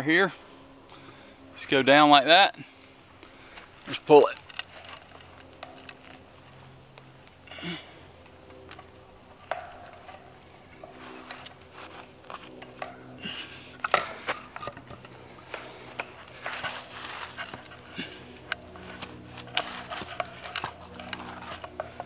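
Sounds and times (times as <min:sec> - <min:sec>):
wire and wood creaking and clicking: 0:03.2 - 0:22.0.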